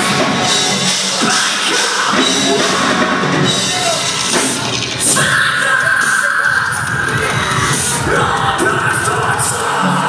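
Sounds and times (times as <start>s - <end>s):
distorted guitars: 0.0s - 10.0s
fast drumming: 0.0s - 10.0s
yelled vocals: 0.0s - 10.0s.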